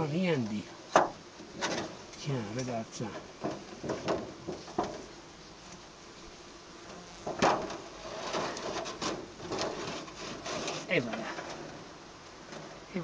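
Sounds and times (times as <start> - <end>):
bees buzzing faintly: 0.0 - 13.0
metal plate scraping on wood: 7.2 - 11.8.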